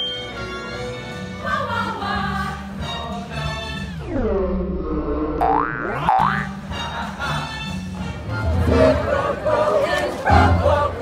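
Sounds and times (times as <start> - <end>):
choir singing with accompaniment: 0.7 - 4.2, 6.5 - 11.0
music slowing down in pitch: 3.9 - 6.6.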